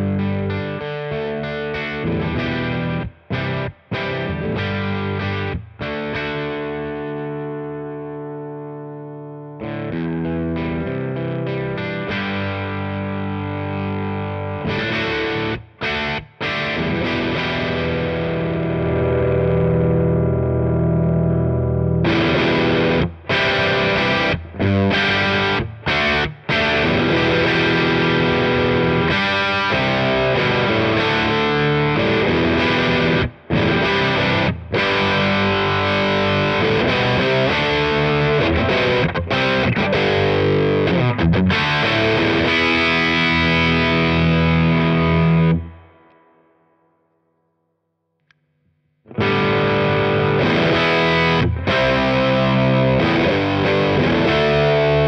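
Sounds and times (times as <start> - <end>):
overdriven electric guitar: 0.0 - 47.0, 49.1 - 55.0.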